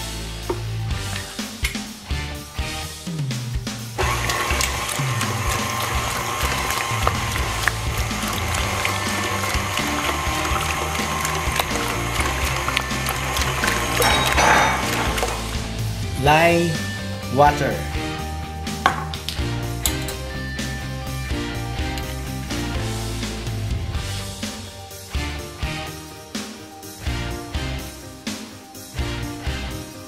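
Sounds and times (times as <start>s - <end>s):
background music: 0.0s - 30.0s
stand mixer beating batter: 4.0s - 15.7s.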